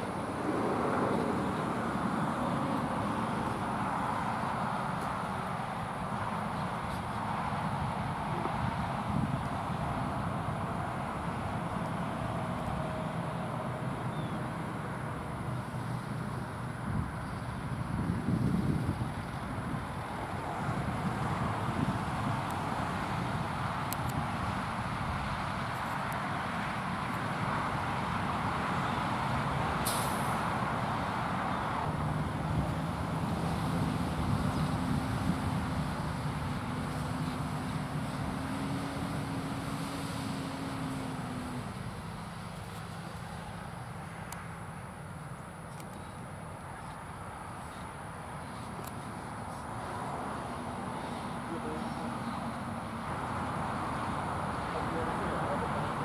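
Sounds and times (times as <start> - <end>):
truck engine droning: 0.0 - 45.5
broad hiss: 25.3 - 31.5.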